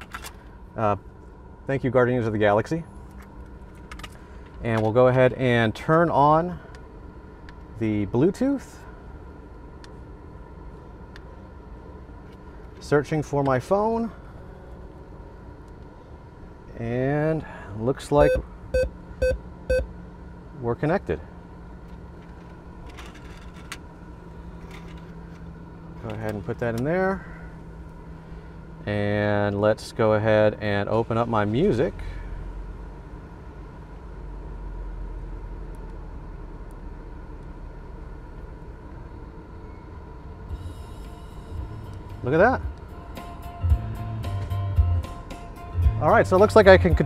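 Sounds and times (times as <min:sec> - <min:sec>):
steady low hum: 0:00.0 - 0:47.0
music with steady bass beat: 0:40.5 - 0:47.0.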